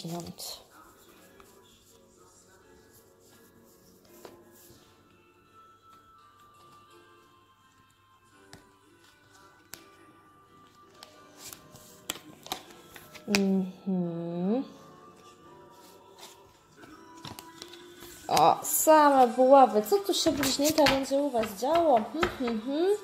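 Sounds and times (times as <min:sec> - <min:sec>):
faint music of slow held notes: 0:00.0 - 0:23.0
tarot cards clicking: 0:10.9 - 0:13.5, 0:17.2 - 0:18.5, 0:20.2 - 0:22.6.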